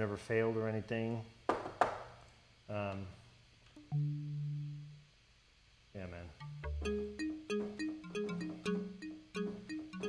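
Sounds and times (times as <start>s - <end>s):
low synthesizer note: 6.4s - 7.2s.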